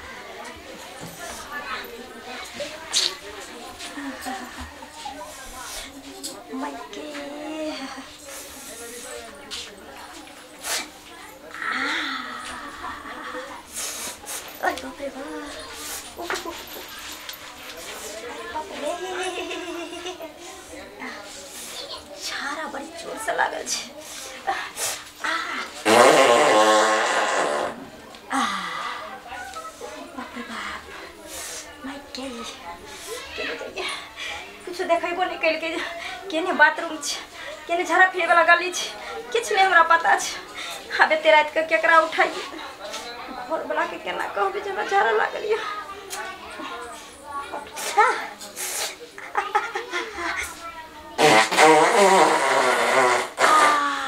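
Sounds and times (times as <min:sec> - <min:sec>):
comic fart sound effect: 0:25.8 - 0:27.8, 0:51.2 - 0:54.0.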